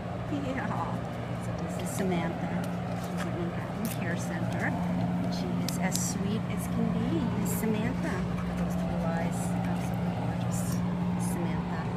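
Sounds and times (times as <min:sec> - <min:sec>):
low mechanical hum: 0:00.0 - 0:11.9.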